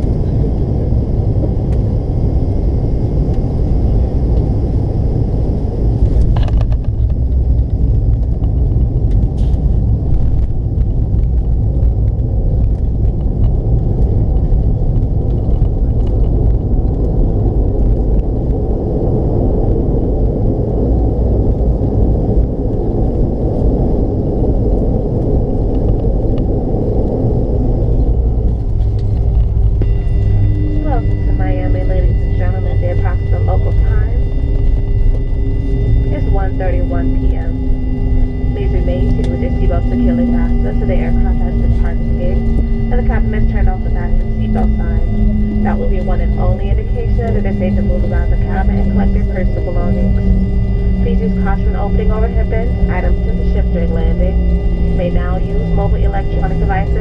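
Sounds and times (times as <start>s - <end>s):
airliner cabin rumble: 0.0s - 57.0s.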